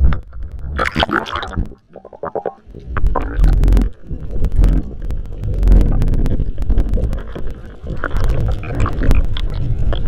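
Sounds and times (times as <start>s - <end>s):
bubbly pulses: 0.0s - 10.0s
water gurgling underwater: 0.0s - 10.0s
scattered clicks: 2.7s - 10.0s.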